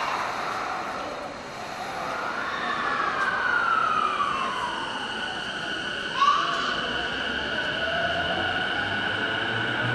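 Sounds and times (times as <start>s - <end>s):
rumble of train cars: 0.0s - 9.9s.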